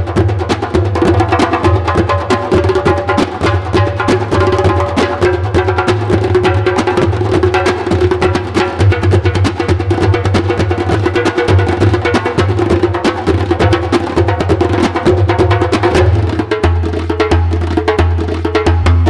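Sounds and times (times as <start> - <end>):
darbukas playing fast rhythm: 0.0 - 19.0.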